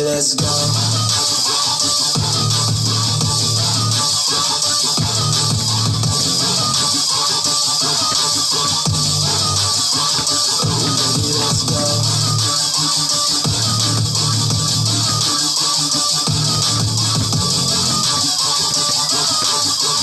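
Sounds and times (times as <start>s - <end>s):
electronic hip-hop backing track: 0.0s - 20.0s
heavy bass line: 0.4s - 20.0s.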